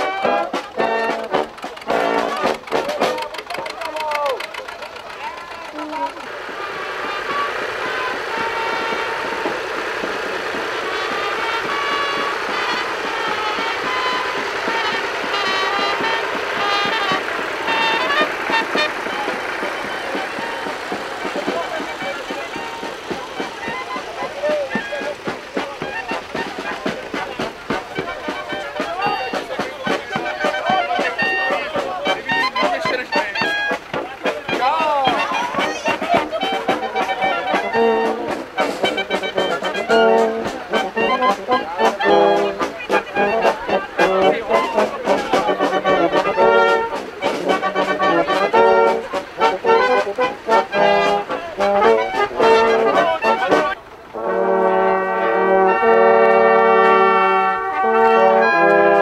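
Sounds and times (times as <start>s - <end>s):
brass band playing: 0.0s - 59.0s
people talking: 0.0s - 59.0s.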